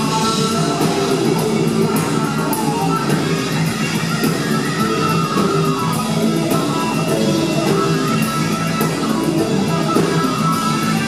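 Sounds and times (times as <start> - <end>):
electric guitar: 0.0 - 11.0
live rock band playing: 0.0 - 11.0.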